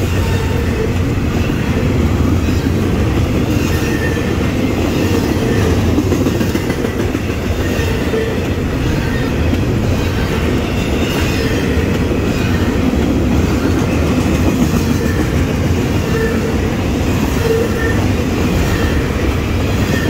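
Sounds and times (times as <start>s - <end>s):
clickety-clack over rail joints: 0.0s - 20.0s
steel wheels rumbling on rails: 0.0s - 20.0s.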